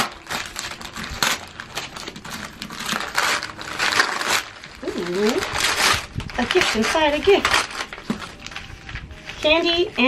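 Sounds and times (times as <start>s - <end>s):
wrapping paper tearing and crinkling: 0.0s - 10.0s.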